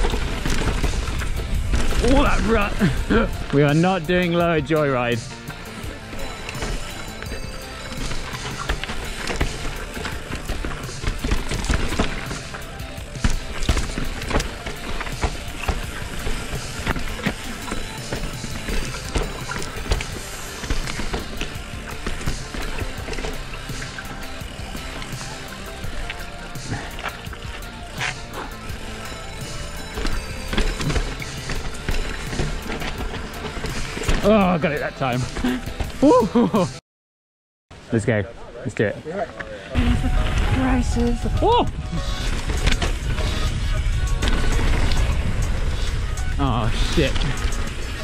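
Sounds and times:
mountain bike rattling: 0.0s - 36.6s, 39.1s - 48.0s
tyre noise: 0.0s - 36.7s, 39.7s - 48.0s
background music: 0.0s - 36.8s, 37.8s - 48.0s.

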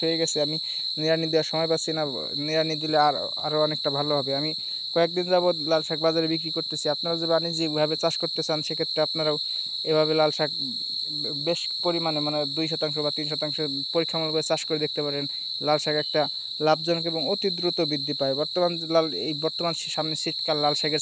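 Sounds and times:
crickets chirping: 0.0s - 21.0s
man talking: 0.0s - 21.0s.

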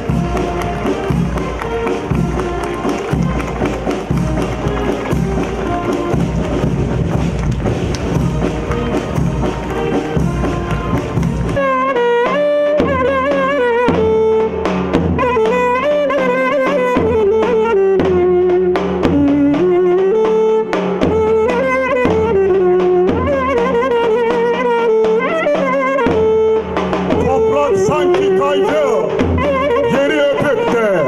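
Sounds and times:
bass drum beat: 0.0s - 11.7s, 27.0s - 30.0s
brass band march music: 0.0s - 31.0s
folk dance tune: 0.0s - 31.0s.

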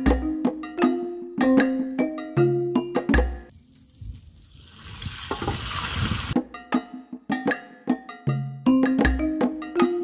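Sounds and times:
percussive background music: 0.0s - 3.6s, 6.2s - 10.0s
fish sizzling in hot oil: 3.5s - 6.4s.

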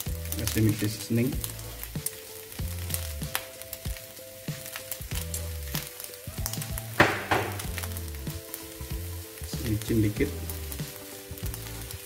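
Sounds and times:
crackles and pops: 0.0s - 12.0s
rice sizzling in a wok: 0.0s - 12.0s.

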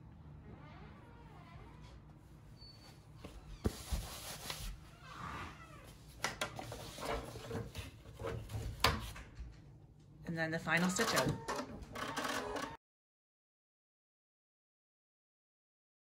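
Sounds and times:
paper and felt rustling: 3.3s - 4.8s.

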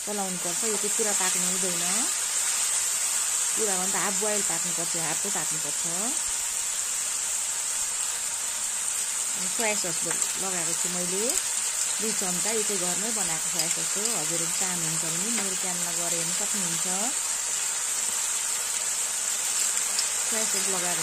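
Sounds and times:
vegetables sizzling in oil: 0.0s - 21.0s.

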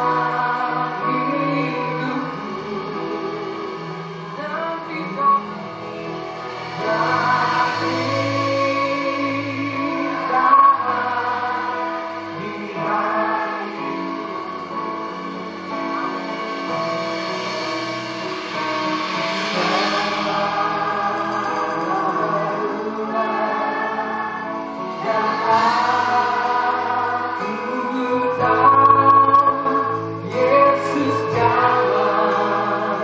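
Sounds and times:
people singing gospel song: 0.0s - 4.4s, 6.4s - 33.0s.

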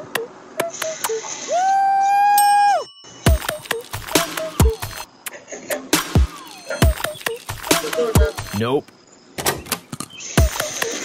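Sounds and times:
clicky electronic music: 3.3s - 5.1s, 6.2s - 8.6s.

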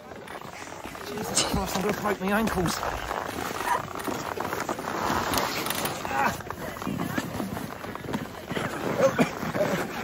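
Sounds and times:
ski clothing rustling: 0.0s - 10.0s
skis and poles knocking: 0.0s - 10.0s
snow crunching and scuffing: 0.0s - 10.0s.

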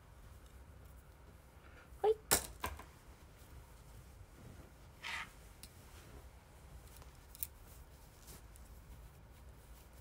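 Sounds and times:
quiet low hum: 0.0s - 10.0s.

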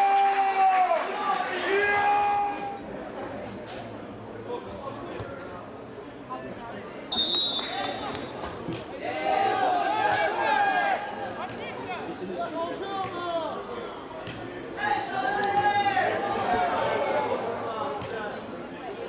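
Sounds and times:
loud shouting voices: 0.0s - 2.8s, 8.9s - 18.1s
shrill whistle blast: 7.1s - 8.4s.

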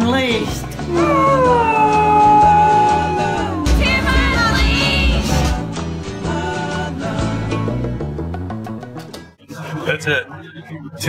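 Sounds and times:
background music with steady beat: 0.0s - 11.0s
dog howling: 0.9s - 3.7s.

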